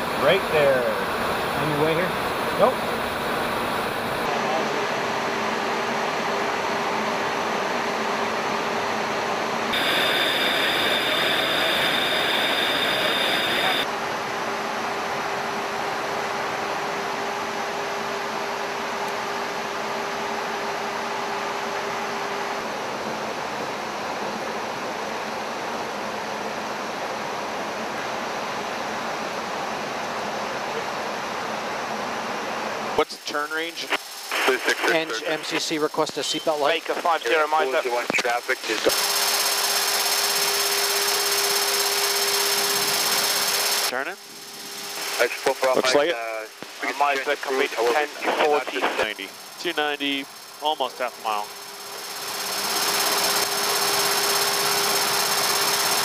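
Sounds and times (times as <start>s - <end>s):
high engine whine: 0.0s - 13.9s, 33.1s - 56.0s
faint steady hum: 9.7s - 13.9s
jet cockpit airflow rushing: 9.7s - 13.9s.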